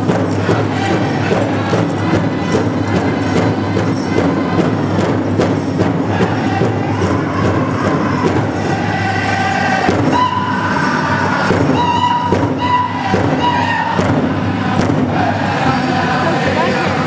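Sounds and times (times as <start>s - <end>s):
large hand drum beat: 0.0s - 10.8s, 11.4s - 17.0s
singers high held notes: 0.0s - 17.0s.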